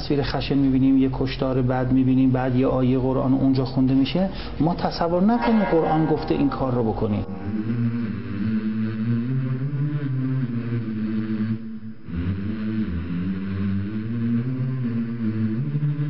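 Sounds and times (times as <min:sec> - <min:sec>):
low chant-like drone: 0:04.8 - 0:16.0.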